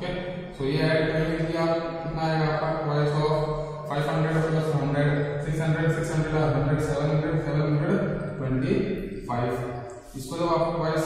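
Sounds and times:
man chanting long steady tone: 0.0 - 11.0.

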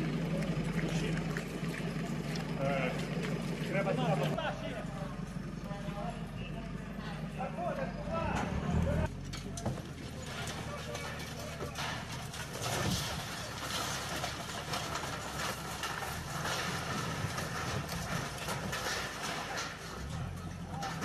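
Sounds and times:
concrete debris clattering: 9.0 - 21.0.

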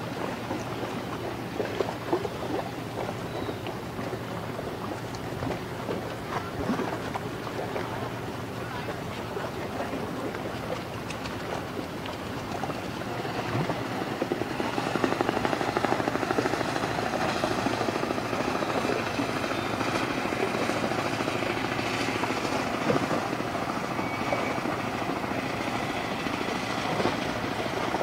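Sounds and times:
ship engine throbbing: 0.0 - 28.0
water washing along hull: 0.0 - 28.0.

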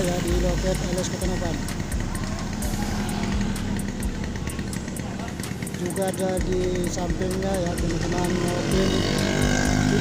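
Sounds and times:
street traffic noise: 0.0 - 10.0
vehicle engines idling: 0.0 - 10.0.

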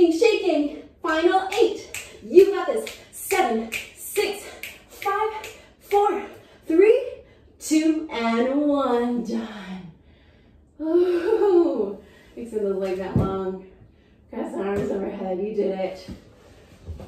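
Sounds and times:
woman's gliding wordless vocalizing: 10.8 - 13.5.

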